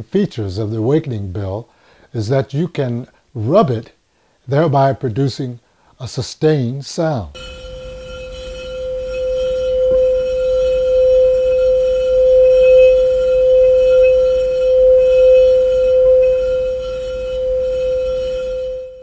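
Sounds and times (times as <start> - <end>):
rubbed metal bar ringing tone: 7.3 - 19.0.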